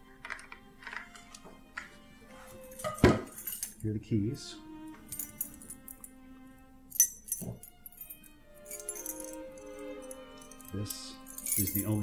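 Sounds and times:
soft sustained background music: 0:00.0 - 0:12.0
keys jingling: 0:02.6 - 0:03.9, 0:05.1 - 0:06.1, 0:07.0 - 0:12.0.

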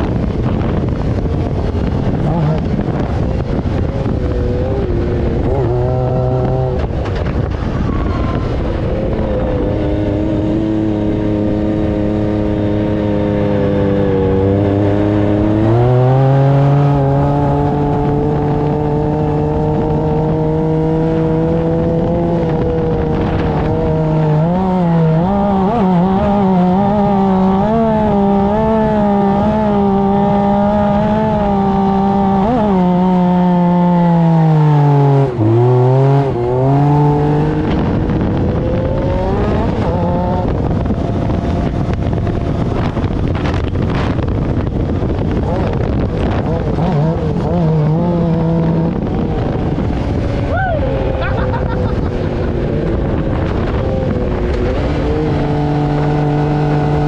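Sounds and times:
buggy engine revving: 0:00.0 - 0:57.0
wind noise: 0:00.0 - 0:57.0.

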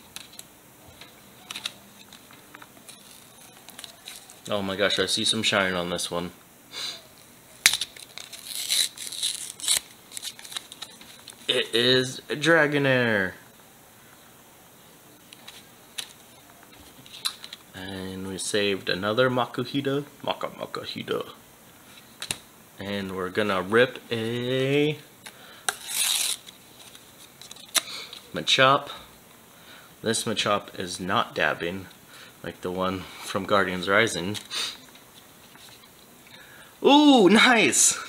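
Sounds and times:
card tearing: 0:01.4 - 0:04.5, 0:07.6 - 0:11.5, 0:25.7 - 0:27.9
sharp crackle of card: 0:07.6 - 0:11.5, 0:25.2 - 0:28.2.

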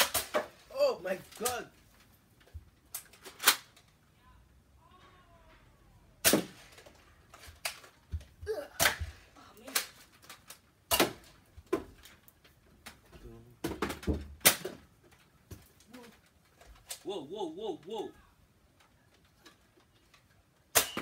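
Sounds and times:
foam-dart blasters firing: 0:06.2 - 0:06.8, 0:20.7 - 0:21.0
short voice sounds: 0:16.9 - 0:18.4.

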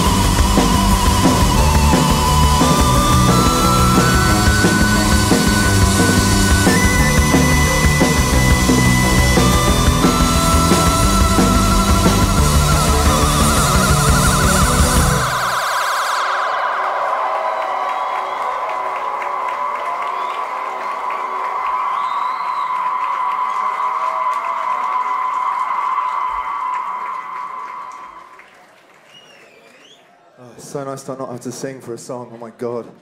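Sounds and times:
sustained high tone: 0:00.0 - 0:18.8
electronic band music: 0:00.0 - 0:19.2.

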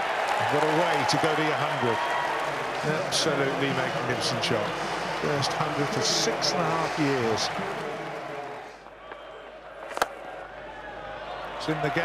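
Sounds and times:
cricket bat striking ball: 0:09.8 - 0:10.2.

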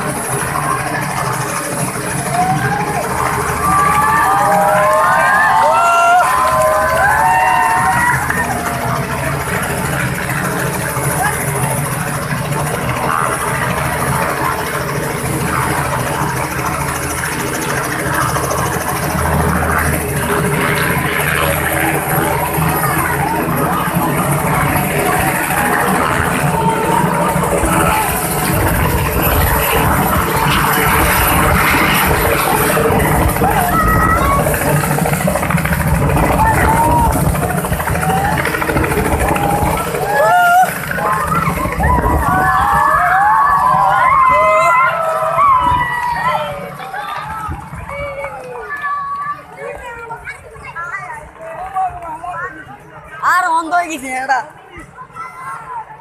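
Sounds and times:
helicopter engine and rotor: 0:00.0 - 0:56.0
rotor downwash buffeting microphone: 0:00.0 - 0:56.0.

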